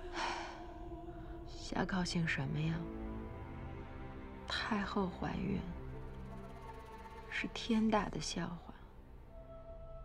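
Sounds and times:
breathy sigh: 0.1s - 0.7s
woman speaking: 1.6s - 2.9s, 4.5s - 5.8s, 7.3s - 8.8s.

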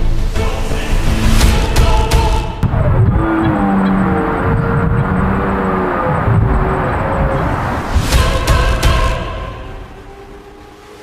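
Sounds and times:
stag roaring: 2.7s - 8.2s.

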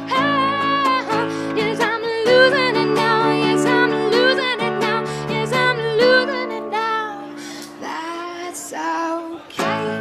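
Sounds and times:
acoustic band playing: 0.0s - 10.0s
woman singing: 0.0s - 10.0s.

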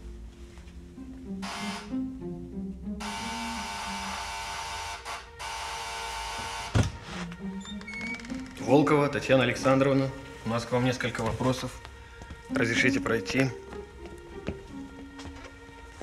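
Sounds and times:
soft music with mallet tones: 0.0s - 4.6s, 6.0s - 16.0s
electric door buzzer: 1.4s - 1.9s, 3.0s - 7.0s.

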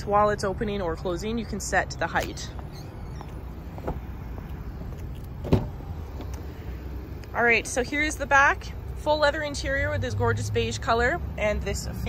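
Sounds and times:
car door latch clicks: 5.4s - 5.8s.

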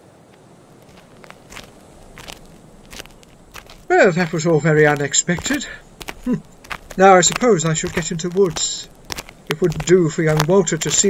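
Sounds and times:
footsteps walking away: 0.8s - 11.0s.

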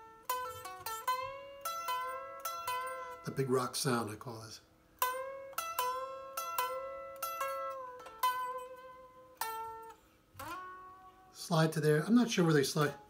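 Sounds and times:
unamplified electric guitar notes: 0.0s - 3.4s, 5.0s - 11.4s.

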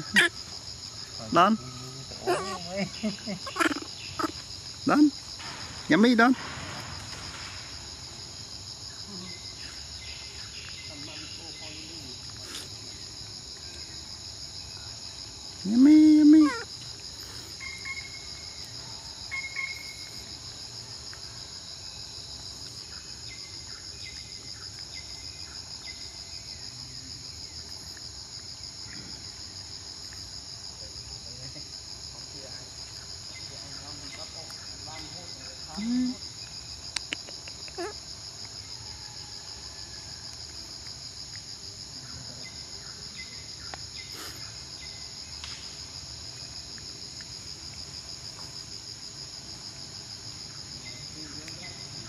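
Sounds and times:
high-pitched insect chorus: 0.0s - 52.0s.

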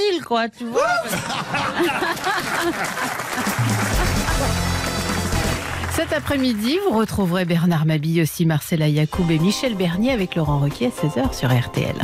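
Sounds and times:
studio audience applauding: 1.5s - 7.7s.

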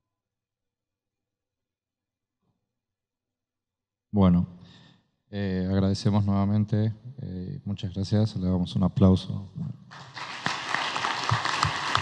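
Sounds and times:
audience applauding: 9.9s - 12.0s.

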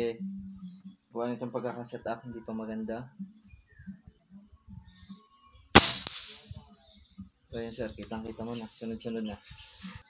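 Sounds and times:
cricket chirr: 0.0s - 10.0s
air rifle shot: 5.8s - 6.4s.

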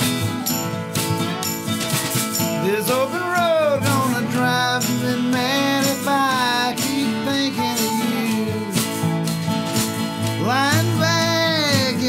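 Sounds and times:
acoustic guitar strumming: 0.0s - 12.0s
dobro slide melody: 0.0s - 12.0s.

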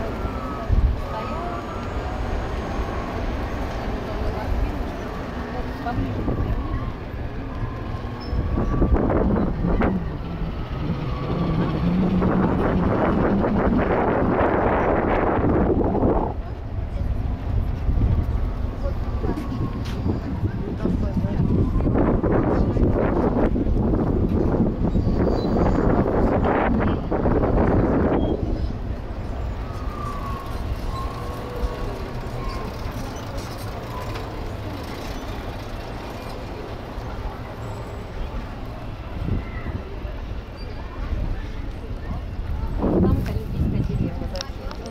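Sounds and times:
rushing noise: 0.0s - 41.2s
vehicle running noise: 0.0s - 44.9s
wind buffeting microphone: 0.0s - 44.9s
low rumble: 6.1s - 32.0s.

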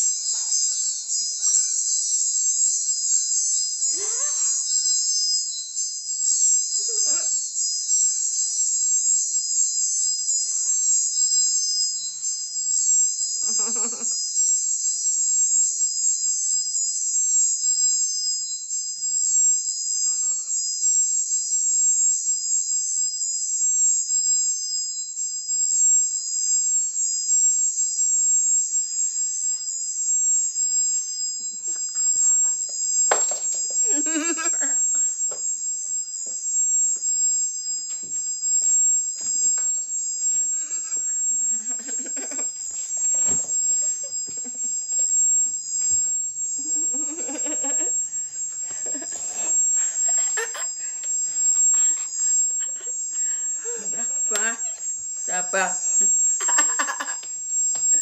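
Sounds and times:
high-pitched hiss with whining tones: 0.0s - 58.0s.

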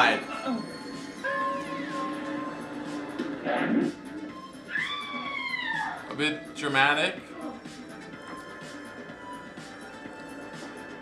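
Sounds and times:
dramatic background music: 0.0s - 11.0s
long high scream: 4.7s - 6.0s.

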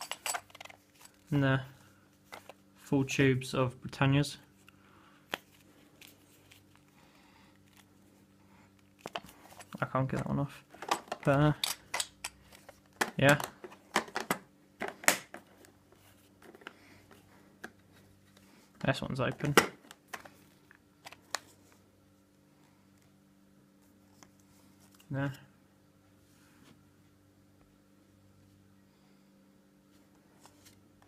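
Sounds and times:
faint room hum: 0.0s - 31.0s.

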